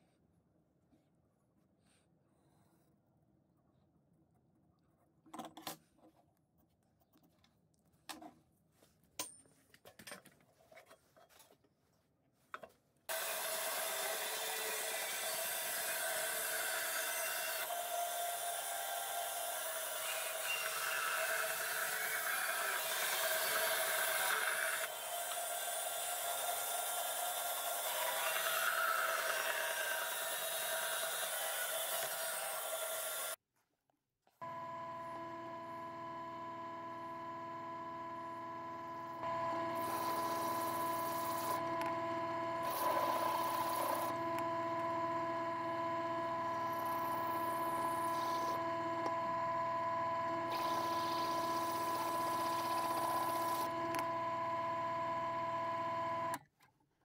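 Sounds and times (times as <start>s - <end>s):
bandsaw cutting wood: 13.1s - 33.4s, 39.2s - 56.4s
drill press drilling steel: 13.1s - 33.4s, 38.3s - 56.4s.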